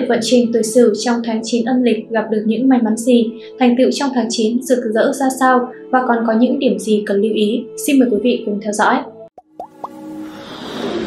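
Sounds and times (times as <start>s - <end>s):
whooshing swell: 10.0s - 11.0s.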